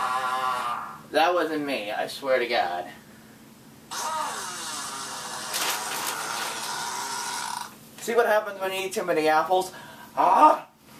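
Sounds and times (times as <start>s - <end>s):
long loud fart: 3.9s - 7.8s.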